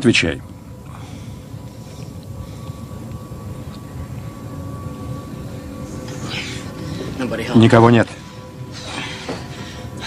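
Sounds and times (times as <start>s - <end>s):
faint high steady tone: 0.0s - 10.0s
low rumbling drone: 0.0s - 10.0s.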